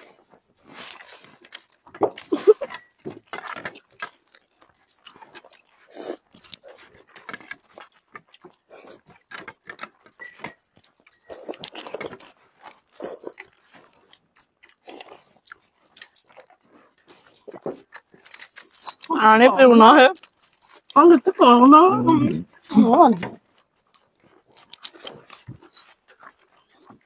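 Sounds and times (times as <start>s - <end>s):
people chewing and lip-smacking: 0.0s - 27.0s.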